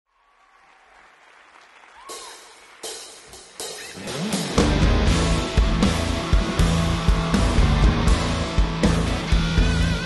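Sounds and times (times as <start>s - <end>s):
audience applauding: 0.1s - 4.2s.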